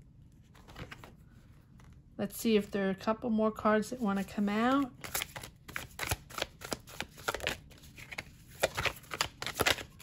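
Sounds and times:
cards being shuffled: 0:04.7 - 0:10.0.

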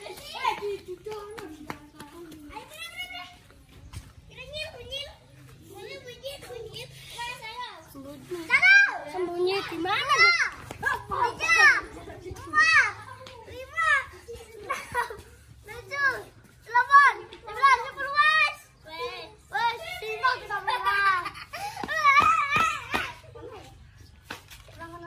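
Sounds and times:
children shouting at play: 0:00.0 - 0:24.0.

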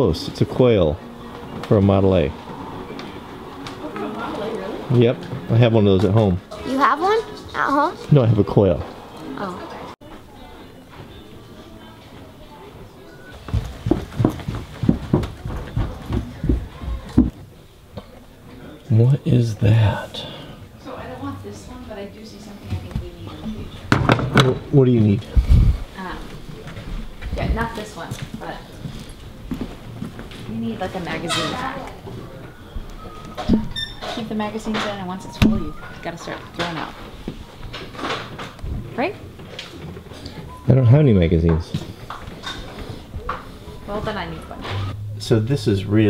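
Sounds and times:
footsteps down carpeted stairs: 0:13.3 - 0:17.4.

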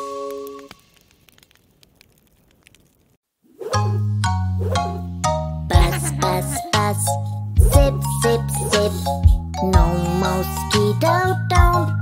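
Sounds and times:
campfire crackling: 0:00.0 - 0:03.2.

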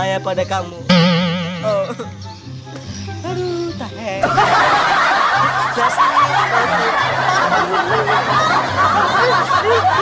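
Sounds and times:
background music with bass: 0:00.0 - 0:05.7
people laughing loudly: 0:04.2 - 0:10.0.

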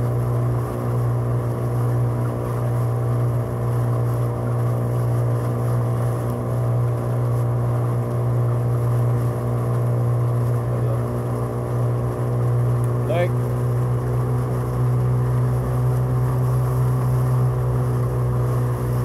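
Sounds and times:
outboard motor running steadily: 0:00.0 - 0:19.0.

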